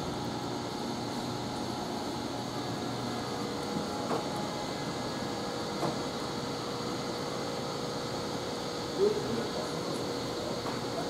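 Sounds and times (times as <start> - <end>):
machinery hum: 0.0 - 11.0.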